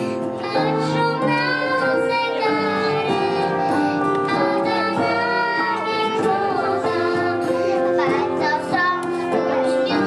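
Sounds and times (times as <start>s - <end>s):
child singing into a microphone: 0.0s - 10.0s
live instrumental accompaniment: 0.0s - 10.0s
violin: 0.0s - 10.0s.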